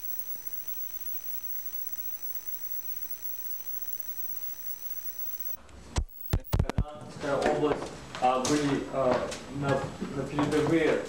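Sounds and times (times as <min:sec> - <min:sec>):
thin electronic tones: 0:00.0 - 0:06.7
tape hiss: 0:00.0 - 0:06.8.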